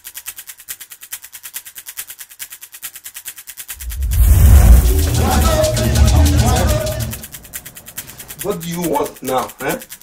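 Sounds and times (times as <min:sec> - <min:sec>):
rapid high-pitched clicks: 0:00.0 - 0:10.0
deep rumble: 0:03.8 - 0:08.4.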